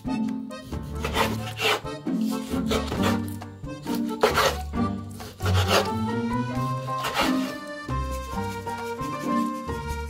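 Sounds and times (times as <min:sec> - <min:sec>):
background music: 0:00.0 - 0:10.0
knife slicing onto cutting board: 0:01.0 - 0:06.0, 0:06.8 - 0:10.0.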